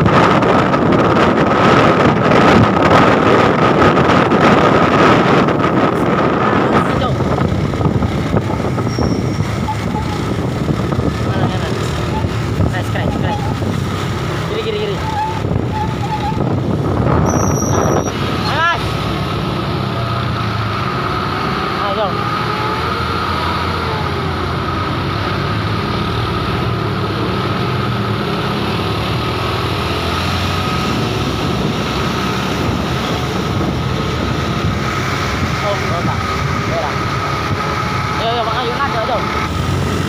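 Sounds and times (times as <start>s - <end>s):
road traffic noise: 0.0s - 40.0s.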